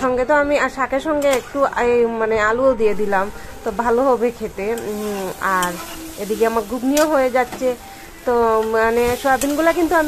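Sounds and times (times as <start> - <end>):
curry sizzling in metal pan: 2.8 - 10.0
metal spatula stirring in pan: 3.3 - 10.0.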